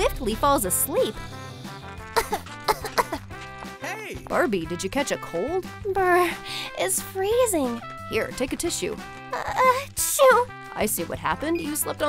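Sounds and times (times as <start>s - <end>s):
light background music: 0.0s - 12.0s
woman coughing: 2.2s - 3.2s.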